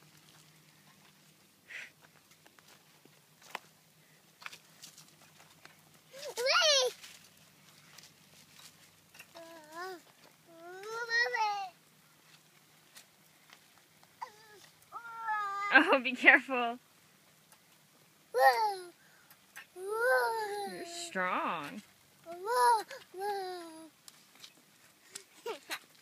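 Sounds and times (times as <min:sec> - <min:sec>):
toddler squealing and babbling: 0:06.1 - 0:07.0, 0:09.3 - 0:11.7, 0:14.2 - 0:15.8, 0:18.4 - 0:19.0, 0:19.8 - 0:21.0, 0:22.2 - 0:23.9.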